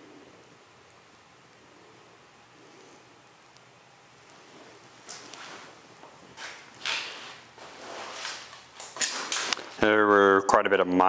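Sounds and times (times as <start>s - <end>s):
footsteps and rustles: 4.2s - 9.9s.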